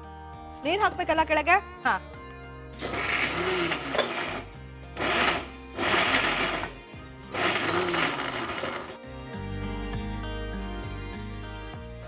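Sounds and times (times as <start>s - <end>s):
background music: 0.0s - 12.0s
electric mixer grinder running: 2.8s - 9.0s.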